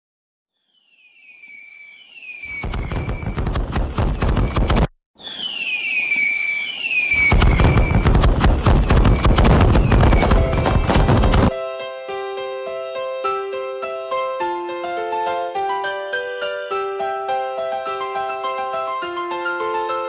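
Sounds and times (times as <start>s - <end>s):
firework falling whistle: 0.6s - 11.5s
fireworks crackling: 2.2s - 11.5s.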